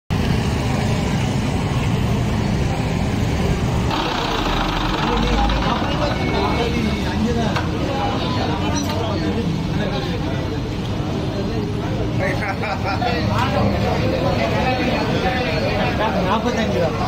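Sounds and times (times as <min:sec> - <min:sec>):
tractor engines idling: 0:00.2 - 0:08.5
people's voices: 0:01.3 - 0:17.0.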